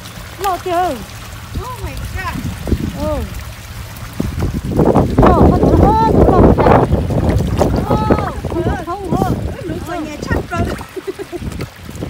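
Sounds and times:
fish splashing in a bucket: 0:00.0 - 0:12.0.

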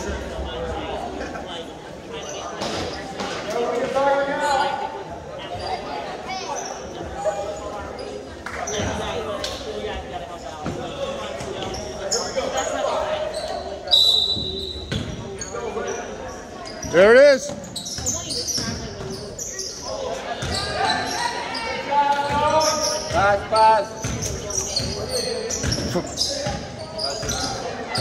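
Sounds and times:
echoing indistinct voices: 0:00.0 - 0:28.0.

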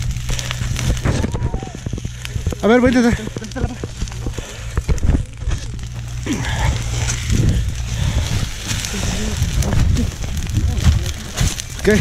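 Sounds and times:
fire low rumble: 0:00.0 - 0:12.0
scrub fire crackling: 0:00.0 - 0:12.0
people shouting: 0:01.0 - 0:01.9.

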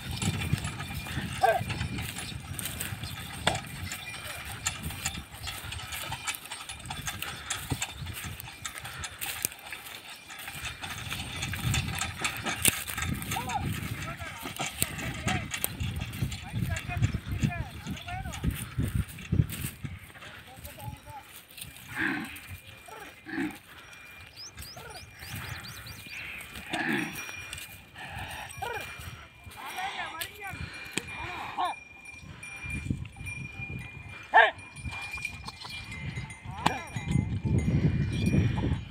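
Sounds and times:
bells ringing on bulls: 0:00.0 - 0:38.9
cart rolling over rough ground: 0:00.0 - 0:38.9
hooves clattering: 0:00.0 - 0:38.9
person shouting call to animals: 0:34.3 - 0:34.6.

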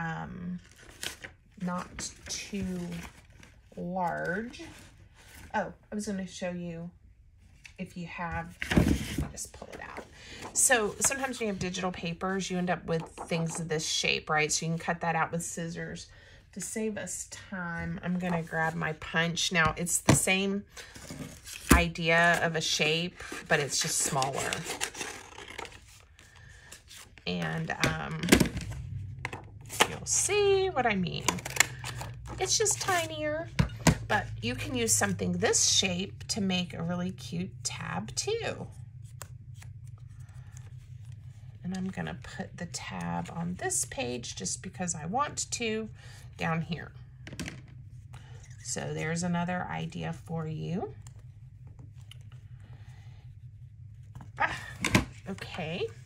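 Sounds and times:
paper rustling: 0:23.1 - 0:27.6.

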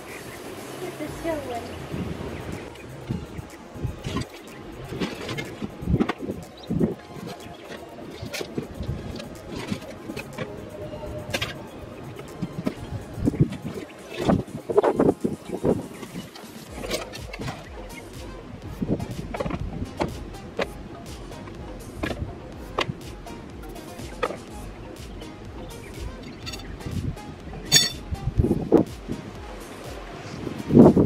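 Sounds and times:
soft background music: 0:00.0 - 0:31.0.

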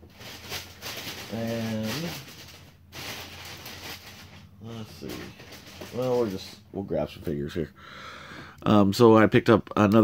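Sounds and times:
rustling of toys handled: 0:00.0 - 0:06.6.

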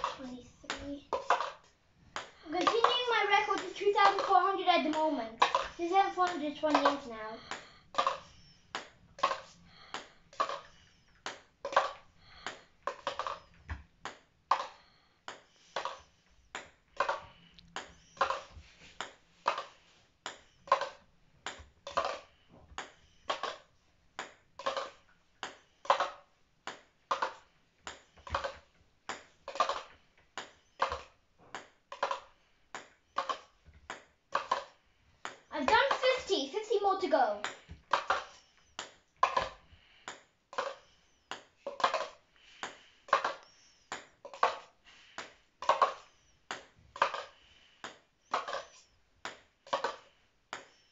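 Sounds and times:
ping pong ball clicking in cup: 0:04.9 - 0:19.7, 0:24.2 - 0:36.2, 0:37.4 - 0:50.8.

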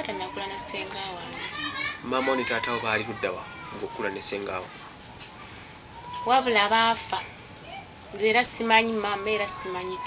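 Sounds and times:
children's voices: 0:00.0 - 0:10.0
people talking: 0:00.0 - 0:10.0.

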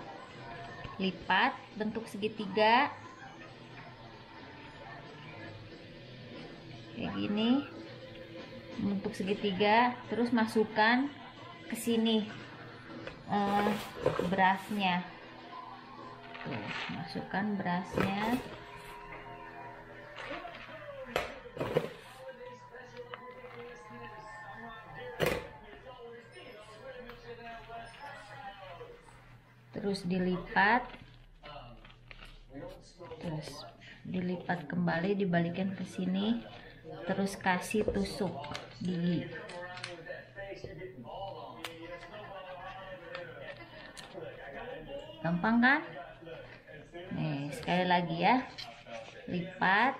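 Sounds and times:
faint voices talking: 0:00.0 - 0:49.9
spoon scraping plastic bowl: 0:13.4 - 0:14.8.

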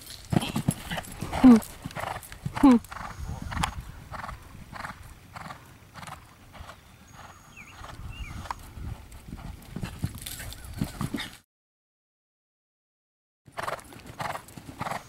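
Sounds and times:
horse breathing: 0:00.0 - 0:11.4
horse hoofbeats on sand: 0:00.0 - 0:11.4, 0:13.5 - 0:15.0.

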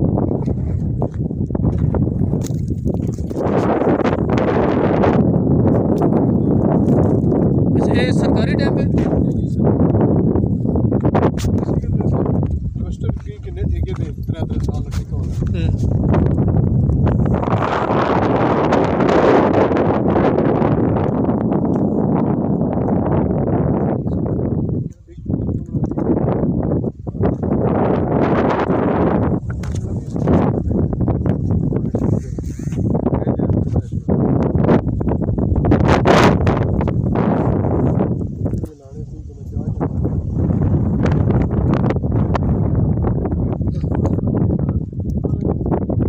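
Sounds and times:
wind buffeting microphone: 0:00.0 - 0:46.0
footfalls on loose dry earth: 0:00.3 - 0:04.8.

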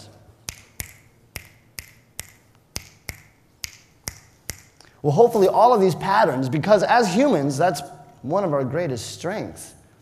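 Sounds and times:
man snapping fingers: 0:00.4 - 0:04.9.

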